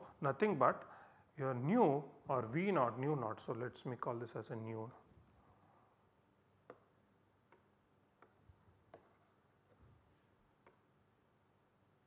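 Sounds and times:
faint mouse clicks: 10.6s - 10.9s.

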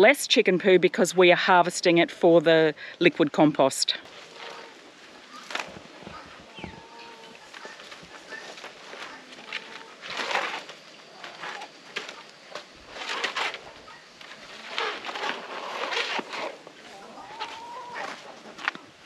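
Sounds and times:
chickens clucking: 4.0s - 10.3s, 11.0s - 14.2s, 14.8s - 18.9s.

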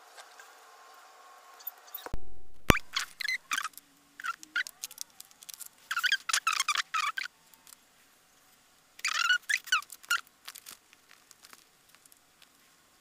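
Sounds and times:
sharp click: 2.1s - 3.2s.

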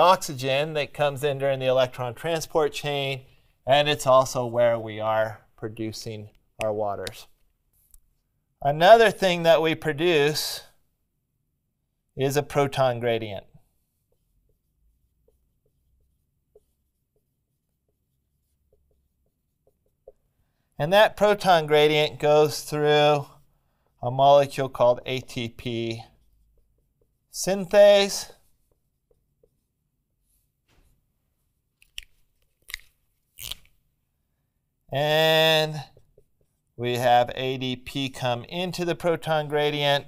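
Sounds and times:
marker squeaking on whiteboard: 12.3s - 23.4s, 24.3s - 30.5s, 35.2s - 36.7s.

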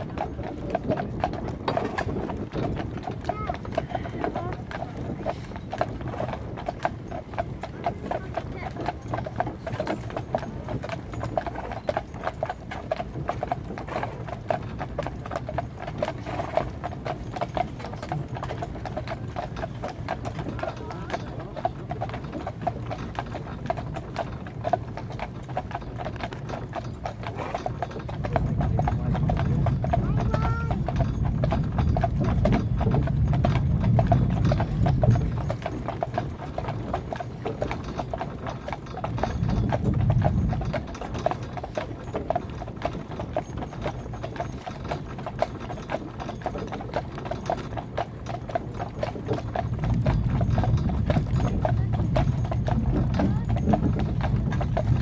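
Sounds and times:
horse hooves clip-clopping on tarmac: 0.0s - 55.0s.

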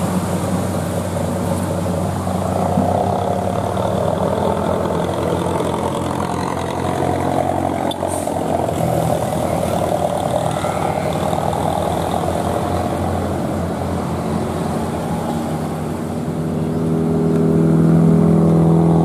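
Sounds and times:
truck diesel engine at low revs: 0.0s - 19.0s.

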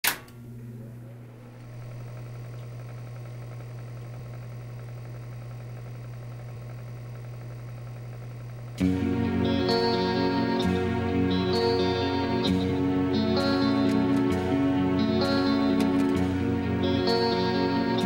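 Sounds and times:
steady low hum: 0.1s - 18.0s.

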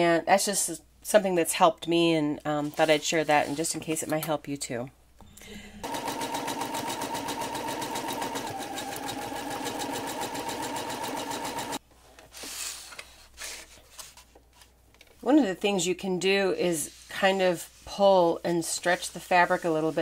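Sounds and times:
sewing machine stitching: 5.8s - 11.8s.

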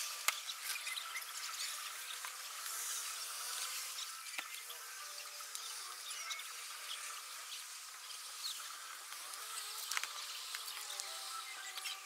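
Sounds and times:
birds chirping: 0.0s - 12.0s
insects hissing: 0.0s - 12.0s.

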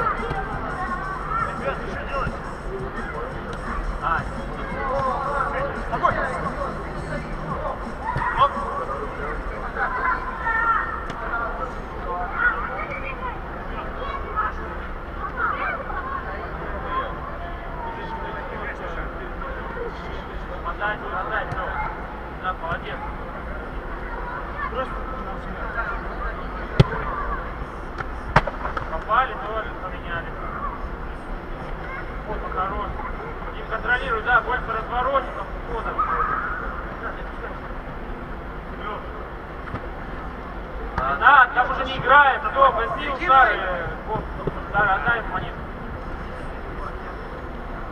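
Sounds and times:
players shouting with echo: 0.0s - 11.3s
ball strikes: 26.7s - 27.1s, 27.9s - 29.1s.

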